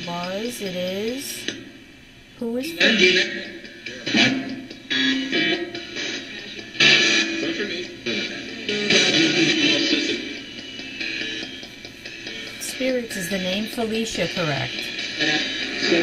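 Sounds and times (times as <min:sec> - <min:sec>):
choppy snippets of voices: 0:00.0 - 0:01.6, 0:02.4 - 0:10.9, 0:12.4 - 0:16.0
choppy snippets of music: 0:00.0 - 0:16.0
radio sweeping through stations: 0:02.4 - 0:16.0.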